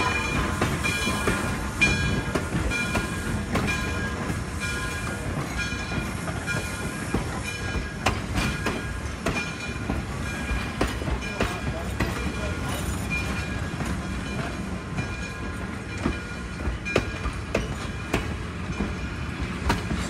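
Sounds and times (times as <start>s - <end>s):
train wheels rumbling: 0.0s - 20.0s.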